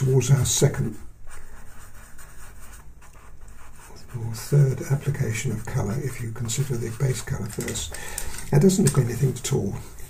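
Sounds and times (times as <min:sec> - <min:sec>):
pencil scratching on paper: 0:00.3 - 0:07.8.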